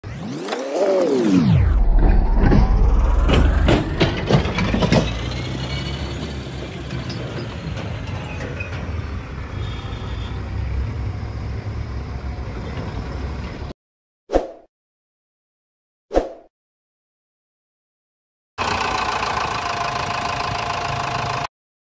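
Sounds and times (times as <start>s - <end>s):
diesel engines rumbling: 2.9s - 13.7s, 18.6s - 21.5s.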